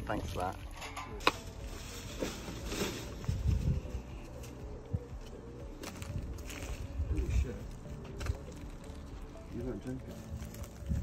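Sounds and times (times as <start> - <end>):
debris knocks and rustles: 0.7 - 4.6.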